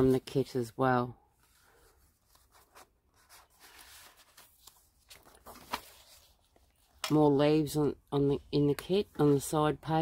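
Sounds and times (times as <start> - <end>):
paper rustling: 1.4 - 7.2.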